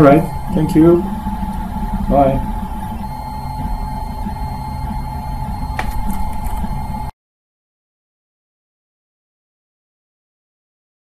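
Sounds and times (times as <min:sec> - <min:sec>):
steady whine: 0:00.0 - 0:07.1
stepper motor tones: 0:00.0 - 0:07.1.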